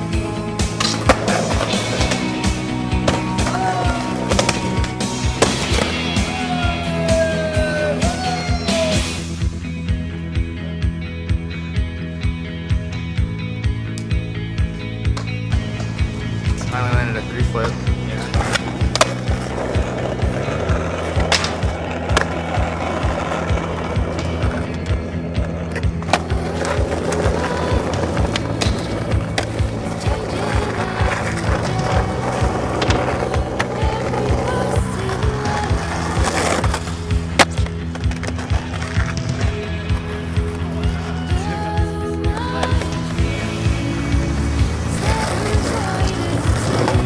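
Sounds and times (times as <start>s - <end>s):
skateboard rolling on concrete: 0.0s - 47.0s
skateboard impacts: 0.6s - 6.6s, 15.0s - 47.0s.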